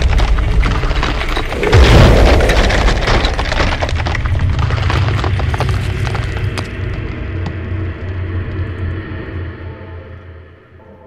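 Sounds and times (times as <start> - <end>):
deep rumble of wall bursting: 0.0 - 8.5
crumbling rubble clicks: 0.0 - 8.6.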